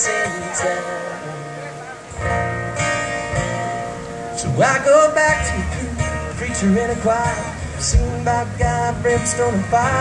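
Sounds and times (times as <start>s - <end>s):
guitars strumming chords: 0.0s - 10.0s.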